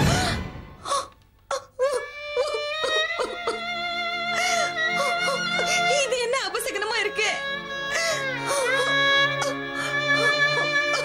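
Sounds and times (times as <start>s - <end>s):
background music: 0.0s - 11.0s
woman sobbing and wailing: 0.0s - 11.0s.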